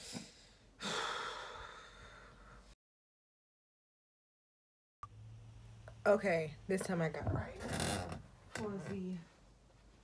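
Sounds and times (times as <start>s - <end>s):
woman sighing: 0.8s - 2.6s.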